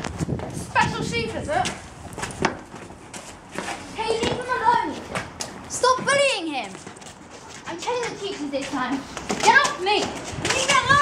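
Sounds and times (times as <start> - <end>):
young person yelling: 9.5 - 11.0.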